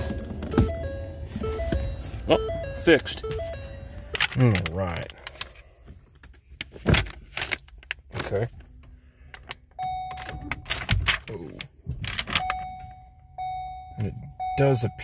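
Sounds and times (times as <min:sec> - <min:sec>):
car warning chime beeping: 0:00.0 - 0:04.2, 0:09.7 - 0:10.6, 0:12.3 - 0:15.0.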